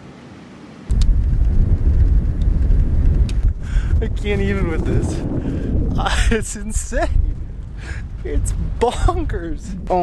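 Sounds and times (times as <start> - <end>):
wind buffeting microphone: 0.9 - 10.0.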